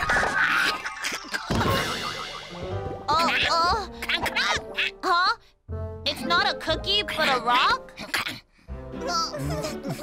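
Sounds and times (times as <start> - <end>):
cartoon background music: 0.0 - 10.0
high cartoonish voice: 3.1 - 5.4.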